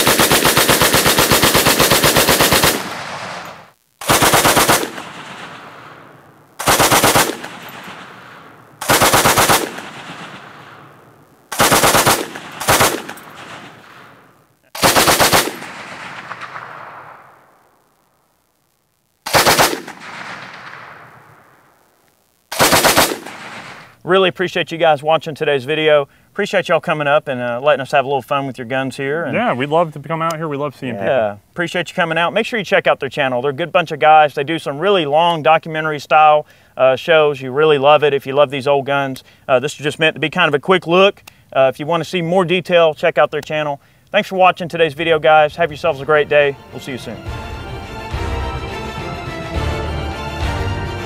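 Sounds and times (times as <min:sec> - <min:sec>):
machine gun firing bursts: 0:00.0 - 0:05.8, 0:06.6 - 0:10.9, 0:11.5 - 0:14.2, 0:14.8 - 0:17.1, 0:19.3 - 0:20.9, 0:22.5 - 0:24.0
gunfire echo: 0:00.0 - 0:17.7, 0:19.3 - 0:21.7, 0:22.5 - 0:24.0.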